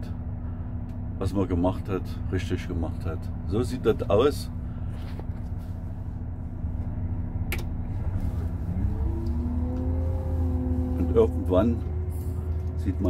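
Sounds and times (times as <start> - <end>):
heavy machine engine revving: 7.8 - 13.0.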